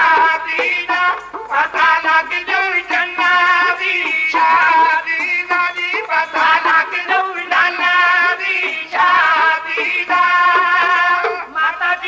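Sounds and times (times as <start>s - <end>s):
folk melody with held notes: 0.0s - 12.0s.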